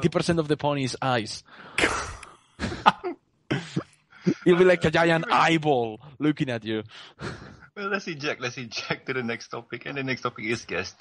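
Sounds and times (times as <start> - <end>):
man laughing and coughing: 1.8 - 5.5.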